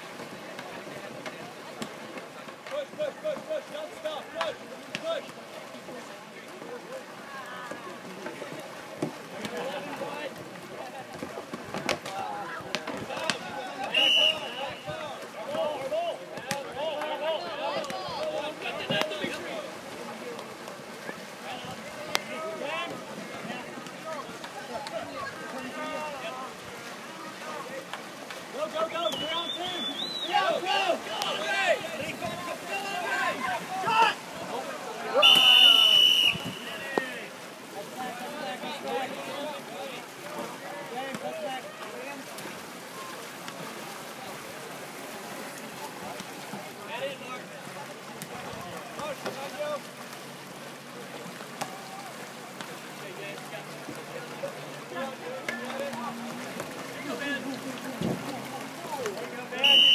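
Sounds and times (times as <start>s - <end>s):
players shouting: 12.1s - 19.5s, 28.6s - 37.4s, 58.9s - 59.9s
referee's whistle blast: 13.9s - 14.9s, 35.2s - 36.8s, 59.6s - 59.9s.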